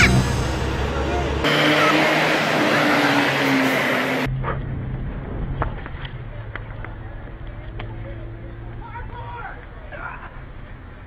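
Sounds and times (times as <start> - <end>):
band music: 0.0 - 2.2
traffic: 0.0 - 11.0
voices: 6.2 - 11.0.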